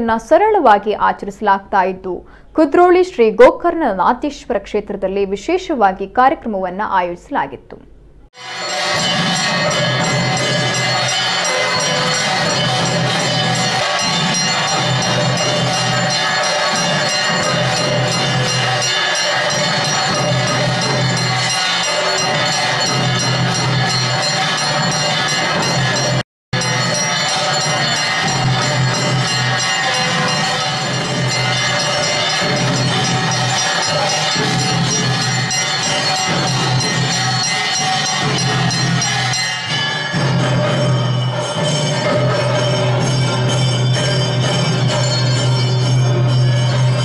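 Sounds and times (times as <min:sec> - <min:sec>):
bells ringing: 0:08.4 - 0:47.0
devotional temple music: 0:08.4 - 0:47.0.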